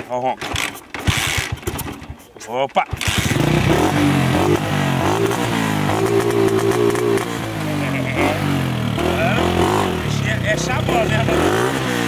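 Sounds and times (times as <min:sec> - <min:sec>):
motorcycle engine revving: 0:00.4 - 0:12.0.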